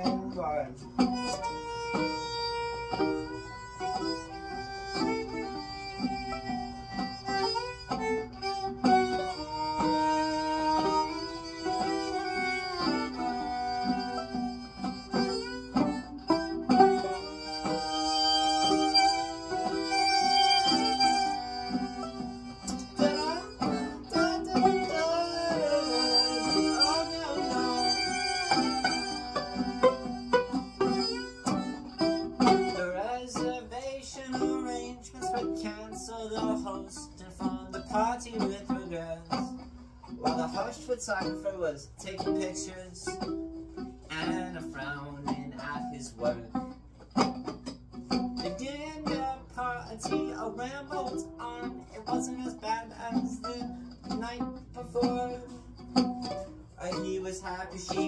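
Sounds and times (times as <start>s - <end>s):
bowed violin: 0.0s - 39.3s
plucked string notes: 0.0s - 58.0s.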